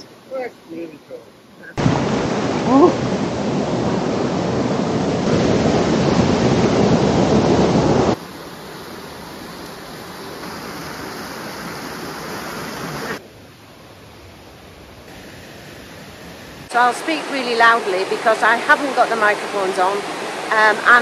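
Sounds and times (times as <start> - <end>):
rocky stream rushing: 1.8 - 13.4, 15.1 - 21.0.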